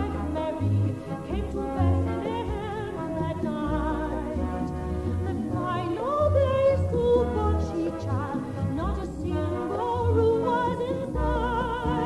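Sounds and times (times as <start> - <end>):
instrumental accompaniment: 0.0 - 12.0
operatic soprano singing: 0.0 - 12.0.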